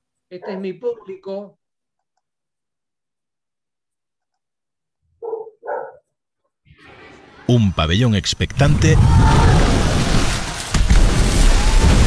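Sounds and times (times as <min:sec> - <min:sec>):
dog barking: 0:00.4 - 0:00.8, 0:05.2 - 0:06.1.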